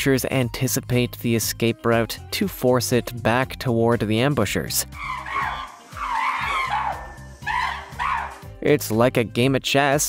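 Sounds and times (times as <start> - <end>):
background music: 0.0 - 10.0
chimpanzees screaming: 4.9 - 8.6.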